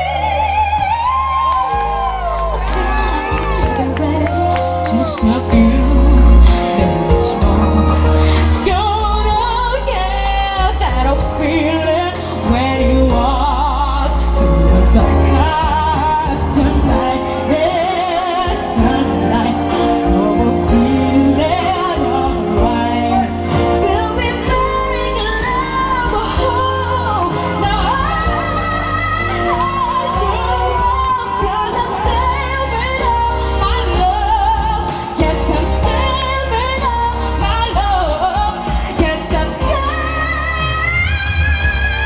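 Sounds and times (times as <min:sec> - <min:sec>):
keyboard and bass accompaniment: 0:00.0 - 0:42.0
pop singer belting: 0:00.0 - 0:42.0.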